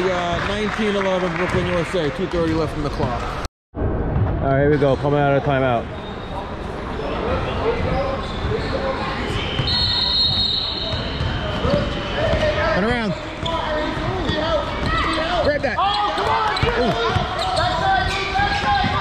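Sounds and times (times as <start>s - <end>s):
spectators chattering: 5.6s - 19.0s
sneakers squeaking: 5.9s - 19.0s.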